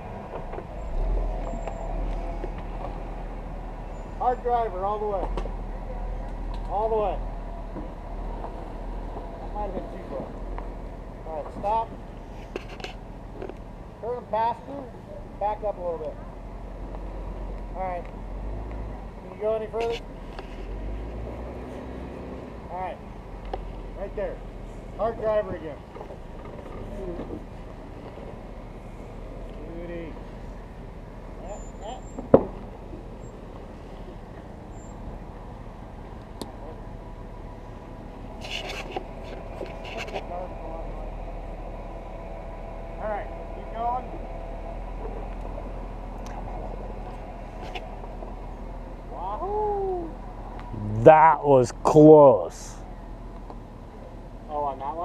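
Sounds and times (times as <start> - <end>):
short scratchy noises: 19.7 - 21.2, 38.3 - 40.3
car engine idling: 22.6 - 55.0.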